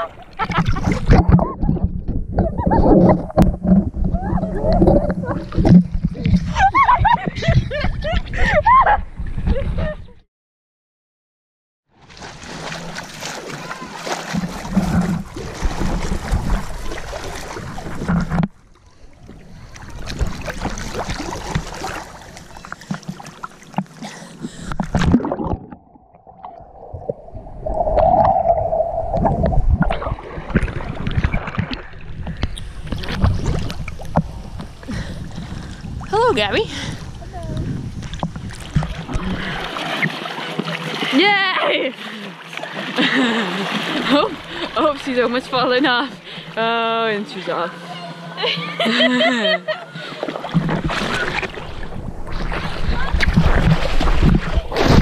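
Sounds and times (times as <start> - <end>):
water splashing and bubbling: 0.0 - 7.6, 12.0 - 46.7, 49.9 - 55.0
waves lapping against camera: 0.0 - 8.5, 12.0 - 48.4, 49.9 - 55.0
wind on microphone: 0.0 - 10.2, 26.4 - 39.7, 50.5 - 55.0.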